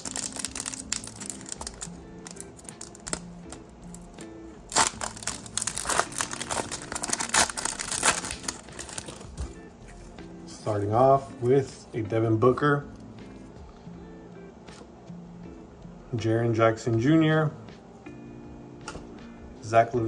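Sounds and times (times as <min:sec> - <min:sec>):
foil wrapper crinkling and tearing: 0:00.0 - 0:03.2, 0:04.7 - 0:09.3
background music: 0:00.0 - 0:20.0.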